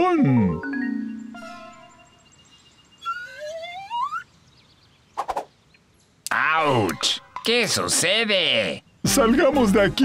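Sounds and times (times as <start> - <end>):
held musical note: 0.4 - 2.2.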